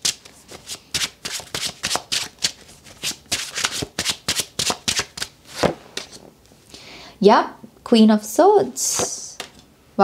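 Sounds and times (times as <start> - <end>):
cards being shuffled: 0.0 - 6.2.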